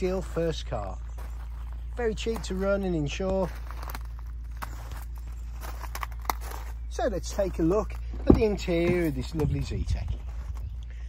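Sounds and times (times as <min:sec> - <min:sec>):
footsteps on gravel: 0:00.0 - 0:10.8
low rumble: 0:00.0 - 0:11.0.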